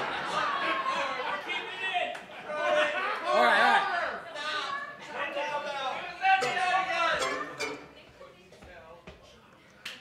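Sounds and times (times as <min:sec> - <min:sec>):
indistinct voices talking: 0:06.0 - 0:08.2.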